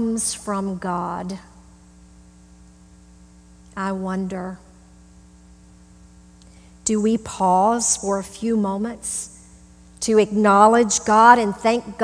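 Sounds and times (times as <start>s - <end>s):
woman speaking: 0.0s - 1.5s, 3.8s - 4.7s, 6.9s - 9.4s, 10.0s - 12.0s
electrical mains hum: 0.0s - 12.0s.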